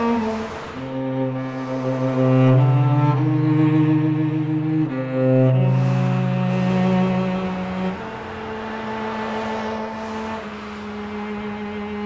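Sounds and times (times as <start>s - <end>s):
car engine and tyre noise: 0.0s - 12.0s
low string notes: 0.0s - 12.0s.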